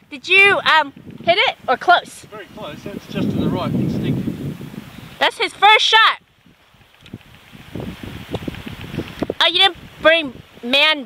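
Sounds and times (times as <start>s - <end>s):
faint wind noise on microphone: 0.0s - 11.0s.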